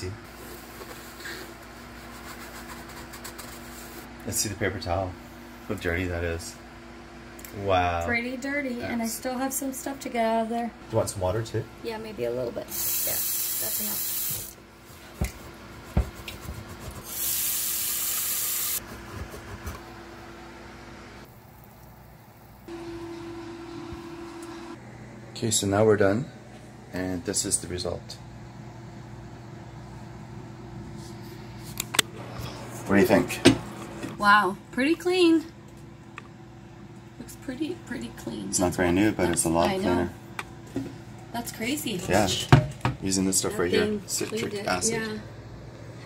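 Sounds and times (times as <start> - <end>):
paper towel scrubbing steel pot: 0.3 - 4.1.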